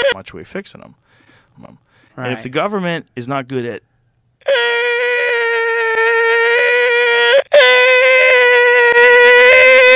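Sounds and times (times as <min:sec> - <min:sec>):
stretched voice high tone: 0:02.2 - 0:02.5, 0:04.5 - 0:09.9.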